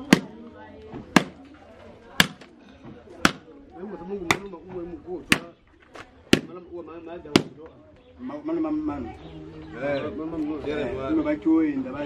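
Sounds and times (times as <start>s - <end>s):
machete chopping meat: 0.0s - 0.4s, 1.2s - 1.4s, 2.2s - 2.5s, 3.2s - 3.5s, 6.3s - 6.6s
voices talking: 0.0s - 12.0s.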